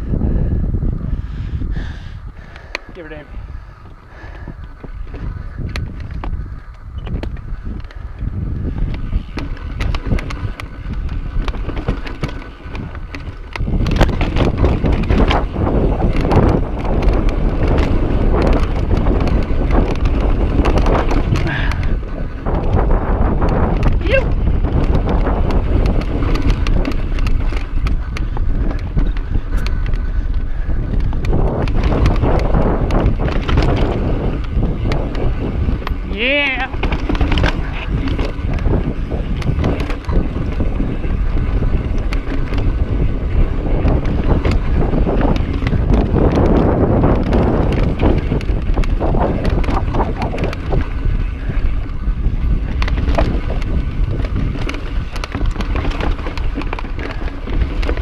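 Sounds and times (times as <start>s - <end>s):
wind buffeting microphone: 0.0s - 58.0s
bike rattling over rock: 2.6s - 58.0s.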